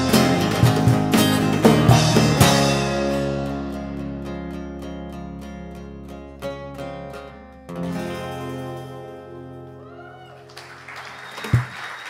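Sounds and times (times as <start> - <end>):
acoustic guitars ringing: 0.0 - 10.5
audience applause: 9.8 - 12.0.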